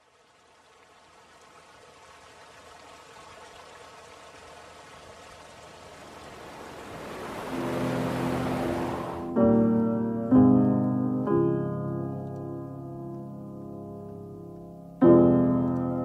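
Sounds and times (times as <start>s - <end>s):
rushing surf-like noise: 5.4s - 9.9s
low sustained chord: 7.4s - 15.0s.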